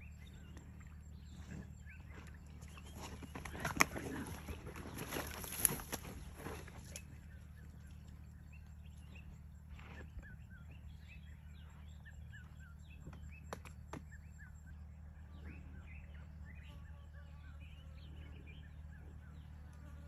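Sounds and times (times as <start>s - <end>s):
small birds chirping: 0.0s - 20.0s
rustling in grass and dirt: 0.2s - 10.6s.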